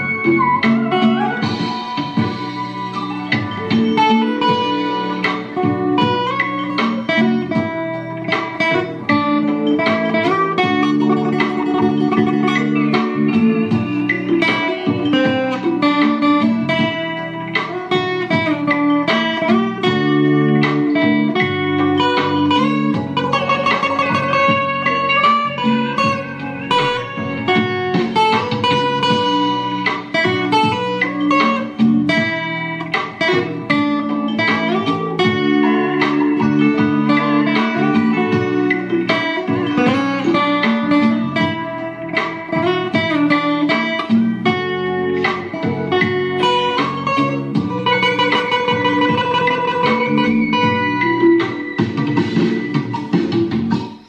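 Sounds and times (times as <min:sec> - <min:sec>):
fingerstyle acoustic guitar: 0:00.0 - 0:54.0.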